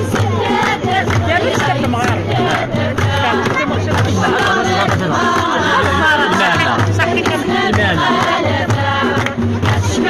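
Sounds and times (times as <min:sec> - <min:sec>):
frame drums: 0:00.0 - 0:10.0
hand clapping: 0:00.0 - 0:10.0
women singing together: 0:00.0 - 0:10.0.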